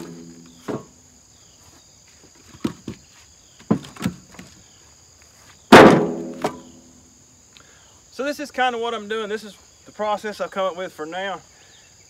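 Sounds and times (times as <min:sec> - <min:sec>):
firewood landing on wood: 0:00.0 - 0:01.0, 0:02.3 - 0:04.6, 0:05.7 - 0:06.8
insects buzzing: 0:00.0 - 0:12.0.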